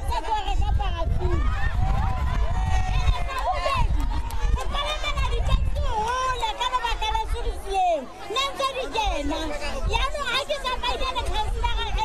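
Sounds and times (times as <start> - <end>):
woman talking into microphone: 0.0 - 1.4, 2.9 - 12.0.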